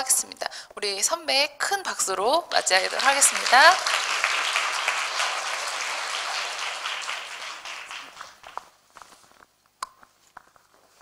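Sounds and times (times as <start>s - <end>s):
audience applauding: 2.5s - 8.8s.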